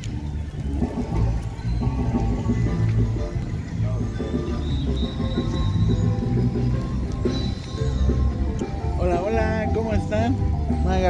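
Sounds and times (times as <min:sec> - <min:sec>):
marimba band playing: 0:00.7 - 0:11.0.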